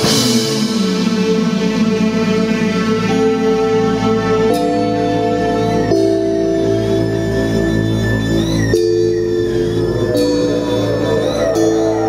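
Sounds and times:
synthesizer chords: 0:00.0 - 0:12.0
high tone gliding: 0:02.8 - 0:12.0.

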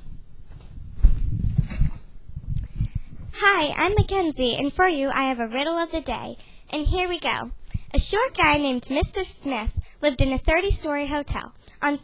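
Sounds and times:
microphone handling thumps: 0:00.0 - 0:04.7, 0:06.8 - 0:10.9.

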